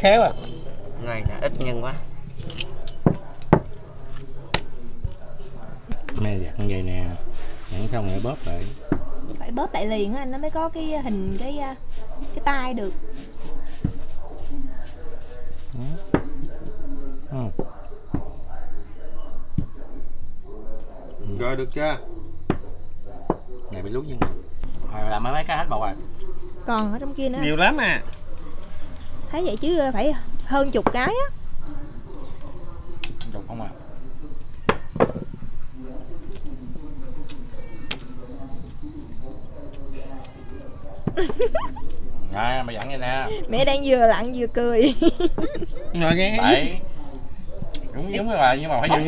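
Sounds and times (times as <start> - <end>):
crickets chirring: 0.0 - 49.0
indistinct voices: 0.0 - 49.0.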